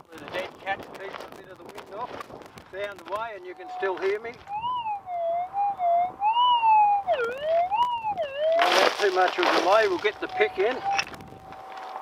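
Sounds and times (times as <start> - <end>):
metal detector warbling tone: 3.6 - 8.7, 10.1 - 11.1.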